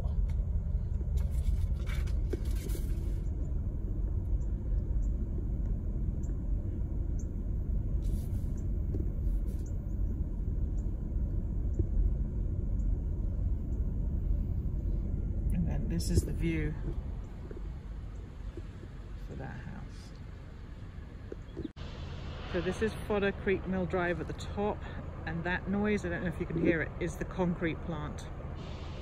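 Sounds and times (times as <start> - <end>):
car rumble from inside cabin: 0.0 - 29.0.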